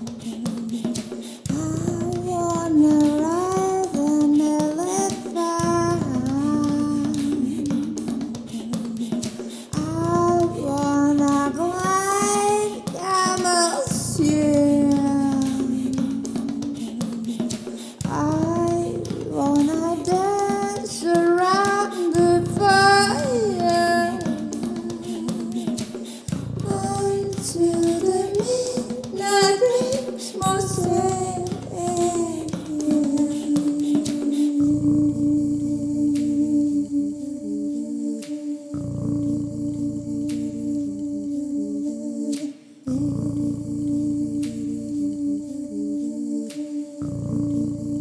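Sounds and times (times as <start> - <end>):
clicking percussive beat: 0.0 - 48.0
hummed vocal drone: 0.0 - 48.0
woman singing wordless notes: 0.0 - 48.0
low drone: 30.4 - 48.0.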